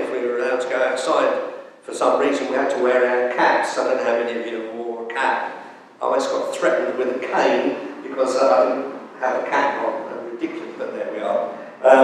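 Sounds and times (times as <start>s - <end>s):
man preaching into microphone: 0.0s - 12.0s.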